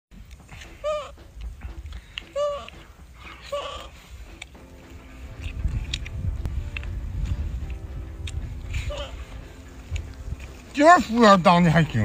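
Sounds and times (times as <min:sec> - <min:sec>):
monkey high-pitched call: 0:00.8 - 0:01.2, 0:02.3 - 0:02.8.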